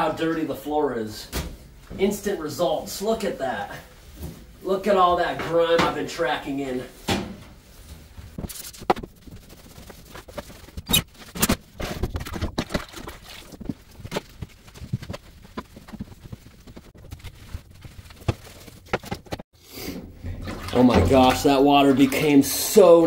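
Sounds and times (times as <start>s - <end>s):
mop knocking and scraping floor: 8.4s - 10.8s
footsteps: 12.0s - 19.4s.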